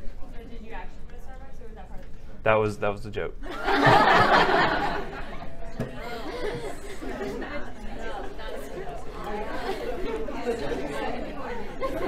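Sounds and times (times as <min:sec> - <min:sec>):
indistinct chatter of people: 0:00.0 - 0:02.4, 0:03.3 - 0:12.0.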